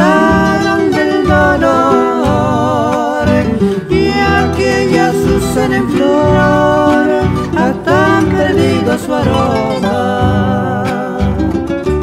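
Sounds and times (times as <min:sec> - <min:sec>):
bass guitar: 0:00.0 - 0:12.0
picked guitar melody: 0:00.0 - 0:12.0
strummed acoustic guitar chords: 0:00.0 - 0:12.0.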